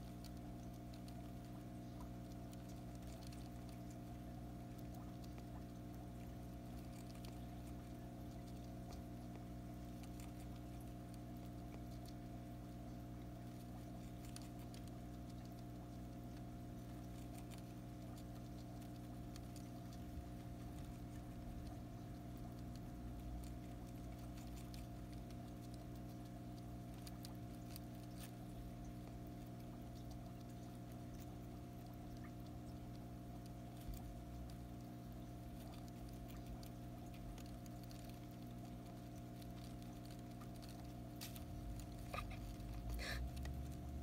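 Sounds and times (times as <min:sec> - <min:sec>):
hamster chewing clicks: 0:00.0 - 0:44.0
steady low hum: 0:00.0 - 0:44.0.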